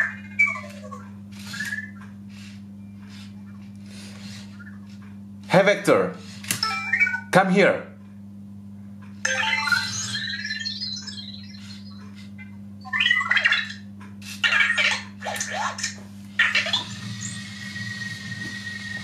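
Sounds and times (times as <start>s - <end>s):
robot warbling chirps and beeps: 0.0s - 1.0s, 9.3s - 17.4s
steady high electronic tone: 9.3s - 12.0s.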